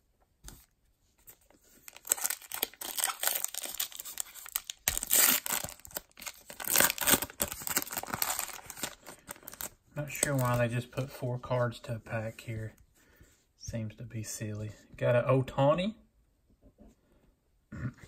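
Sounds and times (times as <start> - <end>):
foil wrapper crinkling and tearing: 1.7 - 10.6.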